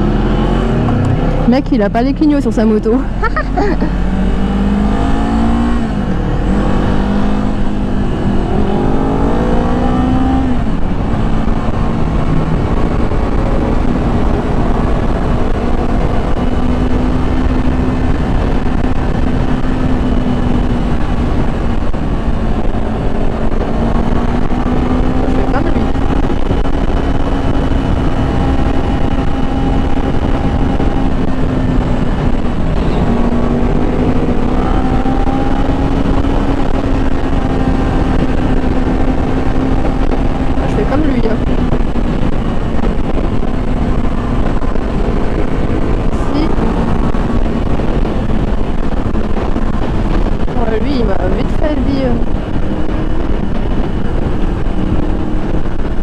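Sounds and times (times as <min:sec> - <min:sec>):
motorcycle engine accelerating: 0:00.0 - 0:56.0
wind rushing over microphone: 0:00.0 - 0:56.0.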